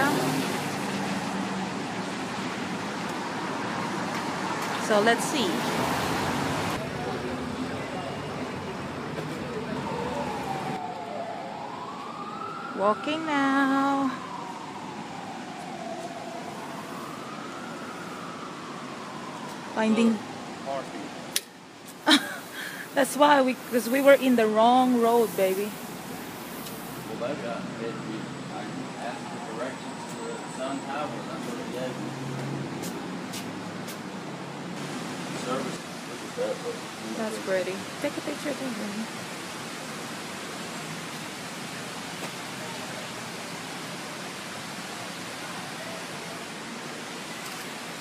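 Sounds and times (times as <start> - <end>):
emergency siren wailing: 0.0 - 21.7, 27.1 - 32.8
outdoor background noise: 0.0 - 48.0
street traffic noise: 0.0 - 48.0.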